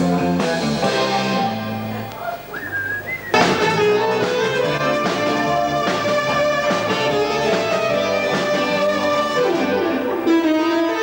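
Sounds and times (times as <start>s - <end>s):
dance band with electric keyboard: 0.0s - 11.0s
high whistle: 2.5s - 3.9s.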